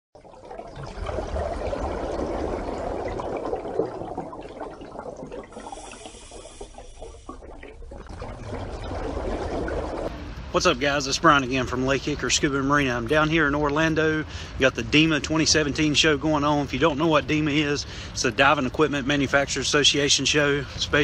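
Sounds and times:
water rushing and bubbling: 0:00.2 - 0:13.0.

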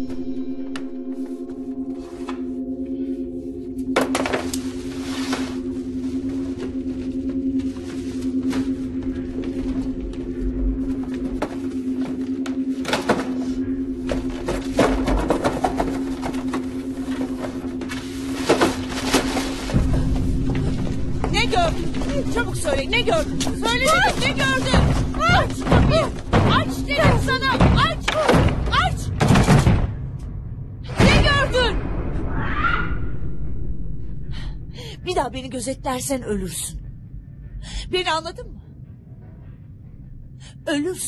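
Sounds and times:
deep rumble: 0:00.0 - 0:41.0
low drone: 0:00.0 - 0:41.0.

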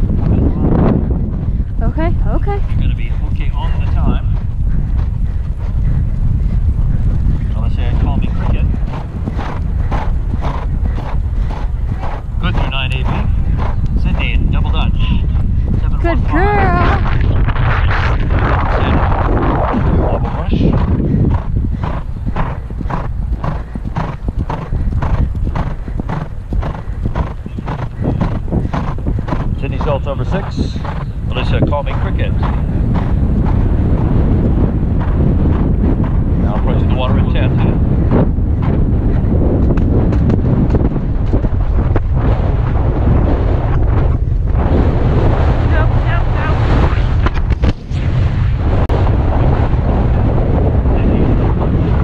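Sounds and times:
horse hoofbeats on grass: 0:00.0 - 0:17.0, 0:20.6 - 0:44.3
wind buffeting microphone: 0:00.0 - 0:52.0.

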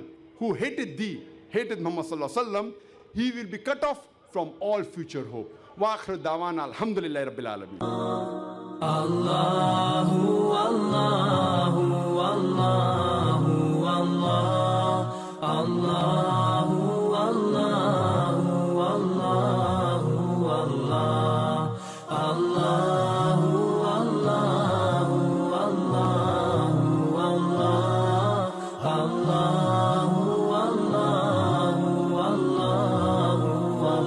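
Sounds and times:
melodic vocal chanting: 0:00.0 - 0:34.0.

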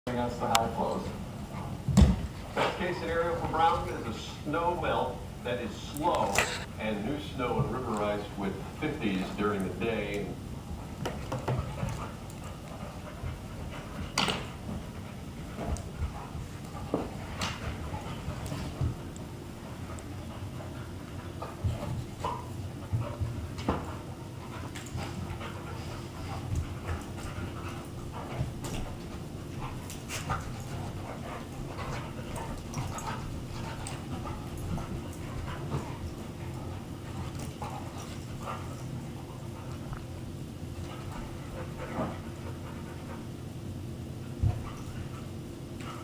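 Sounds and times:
dogs panting and scuffling: 0:00.1 - 0:46.0
steady low hum: 0:00.1 - 0:46.0.

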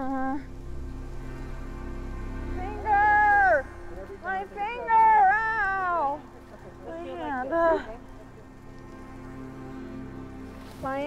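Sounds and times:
faint steady background tone: 0:00.0 - 0:11.0.

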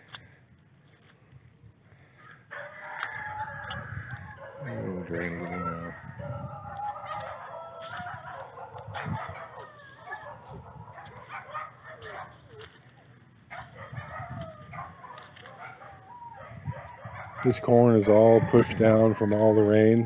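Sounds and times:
chickens clucking and crowing: 0:02.1 - 0:20.0.

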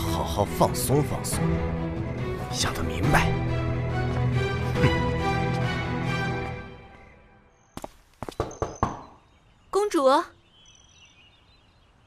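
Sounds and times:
faint birds chirping: 0:04.5 - 0:12.0
woman calling: 0:09.7 - 0:10.4.

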